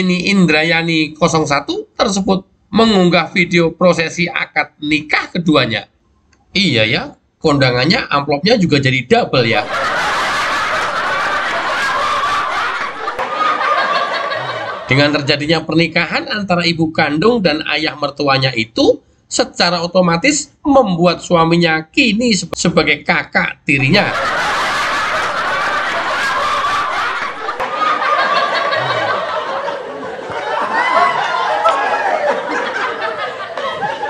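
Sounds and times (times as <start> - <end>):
people laughing: 9.4 - 15.3, 23.8 - 34.0.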